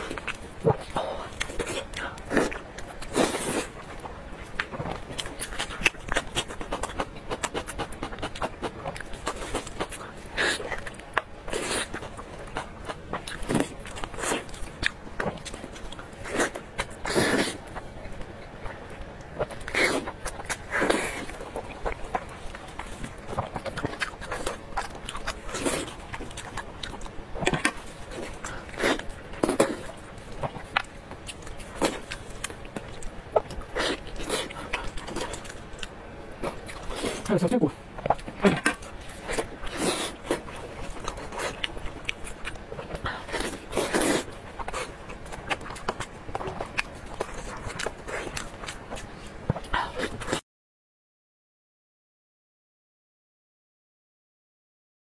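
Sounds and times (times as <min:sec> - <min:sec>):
wet chewing: 0:00.0 - 0:50.4.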